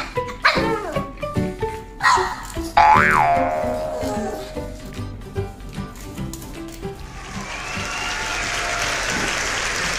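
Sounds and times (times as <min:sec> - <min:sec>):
crowd applause: 0:07.2 - 0:09.9.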